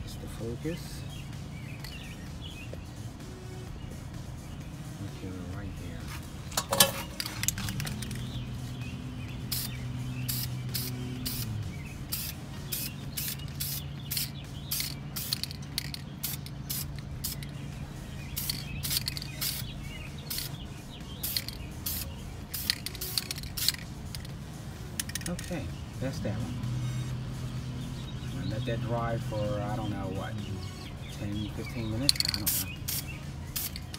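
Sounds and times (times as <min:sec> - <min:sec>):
steady low hum: 0:00.0 - 0:33.9
aerosol spray bursts: 0:08.5 - 0:20.6, 0:21.2 - 0:24.2, 0:32.0 - 0:33.9.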